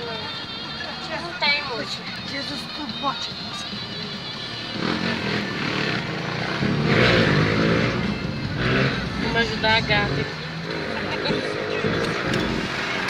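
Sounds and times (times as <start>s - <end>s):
traffic heard from inside car: 0.0s - 13.0s
vehicle engine revving: 4.7s - 13.0s.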